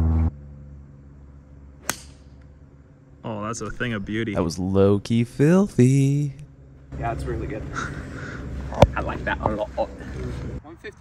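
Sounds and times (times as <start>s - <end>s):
golf club striking ball: 1.8s - 2.6s.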